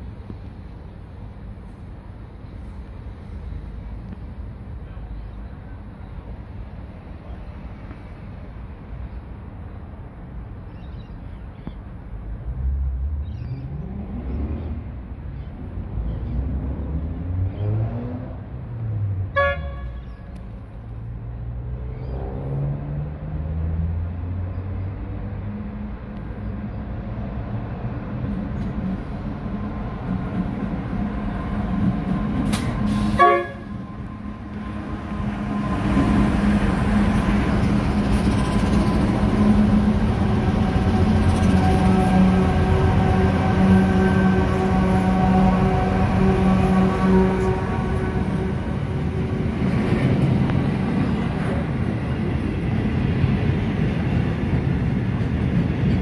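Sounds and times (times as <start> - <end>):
diesel locomotive engines: 0.0 - 56.0
train horn toots: 19.3 - 20.1, 32.6 - 34.1, 40.6 - 49.4.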